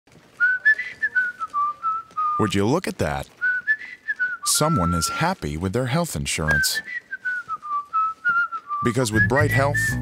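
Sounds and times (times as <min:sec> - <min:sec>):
person whistling a tune: 0:00.4 - 0:02.5, 0:03.4 - 0:05.2, 0:06.5 - 0:10.0.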